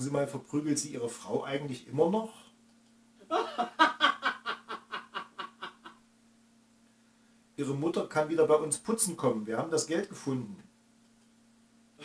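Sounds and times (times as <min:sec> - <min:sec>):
man laughing: 0:03.2 - 0:06.0.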